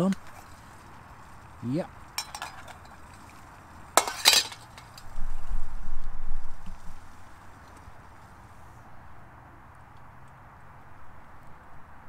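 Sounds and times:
metal pot lid clinking: 2.2 - 3.0, 4.0 - 5.1.

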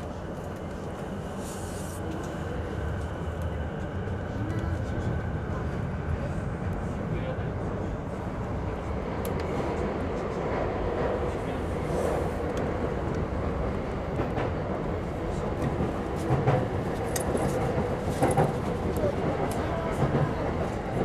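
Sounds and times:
train wheels rumbling on track: 0.0 - 21.0.

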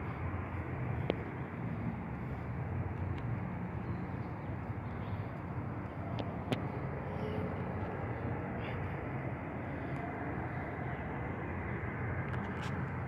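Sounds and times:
low city rumble: 0.0 - 13.0.

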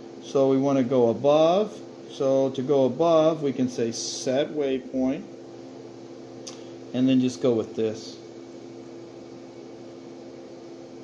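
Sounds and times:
machine hum with faint hiss: 0.0 - 11.0.

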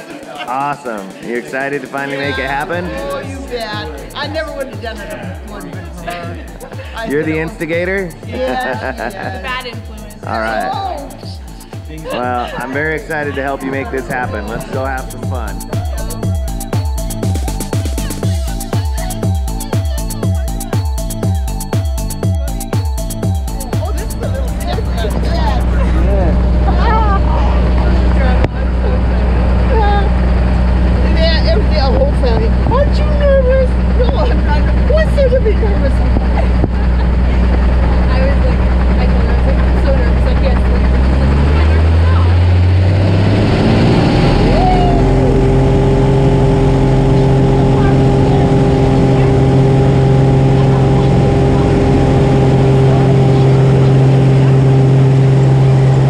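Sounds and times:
voices in cabin: 0.0 - 21.4, 22.2 - 42.4, 46.5 - 56.0
plane engine and propeller: 23.8 - 56.0.

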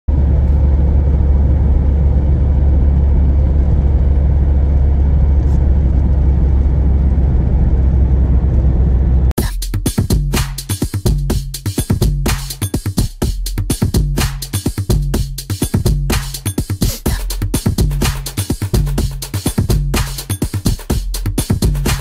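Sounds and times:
car cabin road rumble: 0.1 - 9.4
electronic music with drum-machine beat: 9.4 - 22.0.

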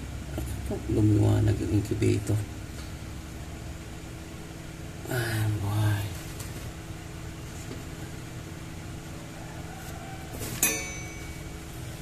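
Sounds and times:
fan motor hum: 0.0 - 12.0.

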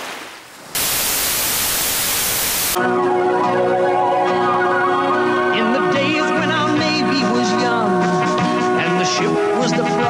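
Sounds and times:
television static hiss: 0.0 - 2.8
music with held notes: 2.8 - 10.0.

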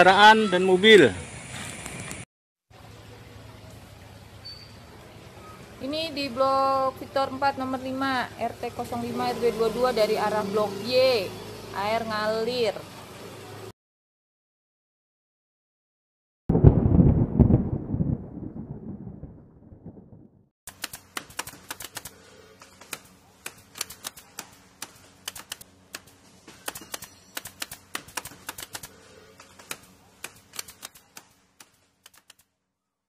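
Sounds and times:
typewriter key clicks: 23.7 - 26.1.

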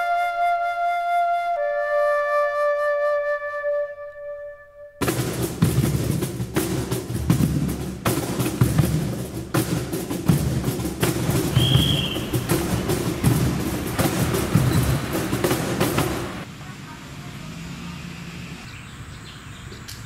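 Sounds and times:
hand drumming on cajon: 5.0 - 16.4
voices: 11.1 - 20.0.

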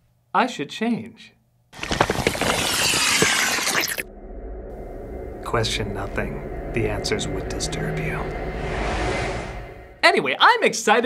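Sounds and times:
faint steady background: 0.0 - 11.0.

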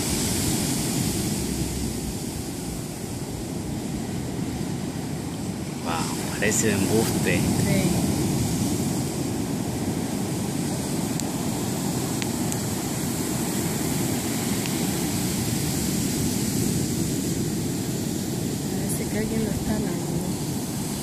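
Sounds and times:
ocean waves breaking on beach: 0.0 - 21.0.

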